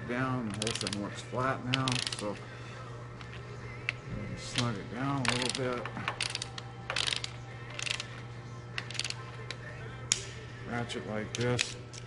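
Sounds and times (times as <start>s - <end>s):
socket ratchet clicking: 0.5s - 1.1s, 1.7s - 2.3s, 3.8s - 8.1s, 8.8s - 9.2s.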